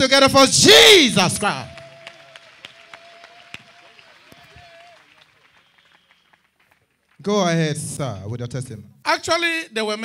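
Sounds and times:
crowd clapping: 0.9s - 7.6s.

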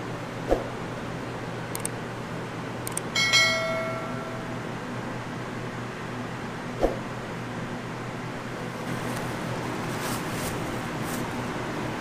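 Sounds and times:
steady low hum: 0.0s - 12.0s
bright bell chime: 3.2s - 4.7s.

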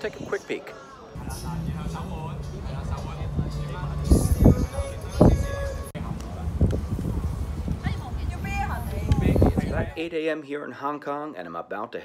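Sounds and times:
people's voices: 0.0s - 10.2s.

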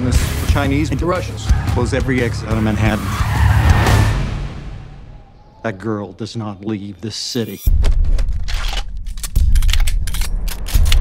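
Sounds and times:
car tyres screeching: 1.2s - 5.9s.

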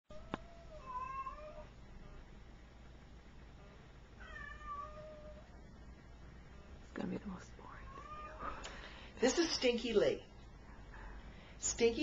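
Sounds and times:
cat meowing: 0.1s - 1.7s, 4.2s - 5.4s, 7.9s - 8.6s.

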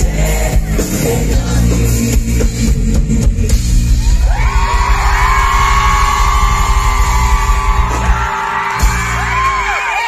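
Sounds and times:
pop-rock band playing loudly: 0.0s - 10.0s.

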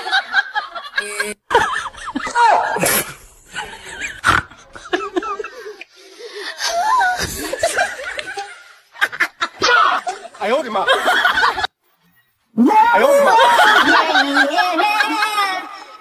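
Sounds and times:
people laughing and talking: 3.5s - 11.8s, 12.6s - 16.0s.

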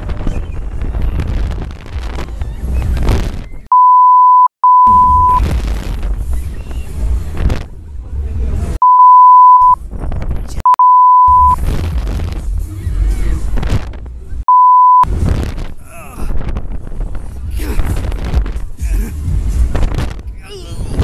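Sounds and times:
wind buffeting microphone: 0.0s - 3.7s, 9.8s - 10.6s, 15.1s - 18.8s
censor bleeps: 3.7s - 5.4s, 8.8s - 9.8s, 10.7s - 11.6s, 14.5s - 15.1s.

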